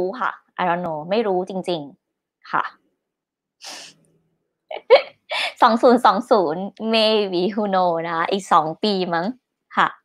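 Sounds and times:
woman speaking: 0.0 - 2.8, 4.7 - 10.0
woman laughing: 4.7 - 5.6.

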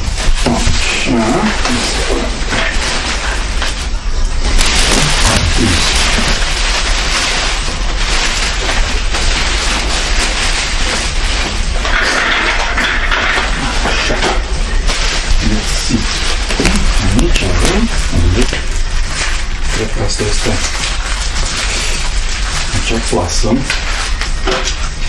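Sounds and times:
plastic wrapping crinkling: 2.7 - 12.4, 14.7 - 24.9
cardboard rubbing: 4.6 - 6.5.

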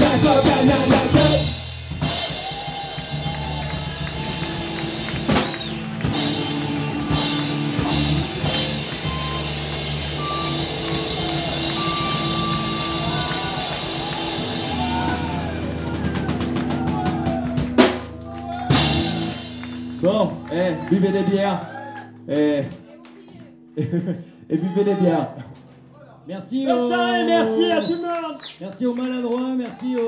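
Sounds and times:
distorted electric guitars: 0.0 - 22.7
bass guitar: 0.0 - 22.8
drum kit: 0.0 - 24.2.

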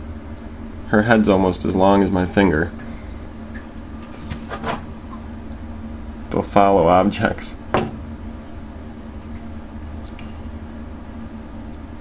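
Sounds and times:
steady low hum: 0.0 - 12.0
cricket chirps: 0.4 - 0.7, 5.5 - 5.8, 8.4 - 10.8.

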